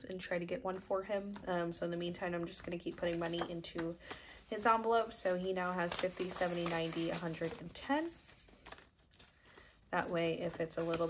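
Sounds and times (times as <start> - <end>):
banknotes rustling: 2.3 - 11.0
soft paper clicks: 8.4 - 9.7.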